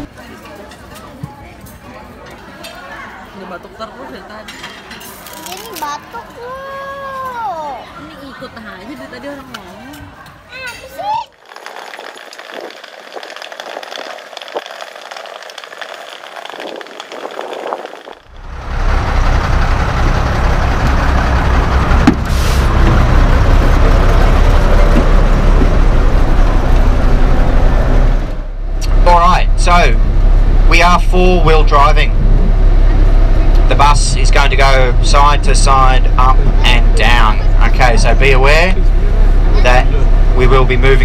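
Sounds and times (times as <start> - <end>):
bus engine idling: 14.8 - 41.0.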